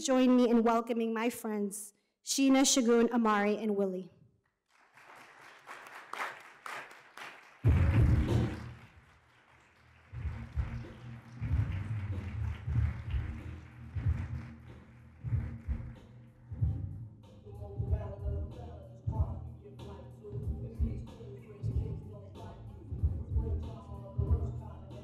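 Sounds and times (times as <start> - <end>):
audience clapping: 4.6 - 16.2.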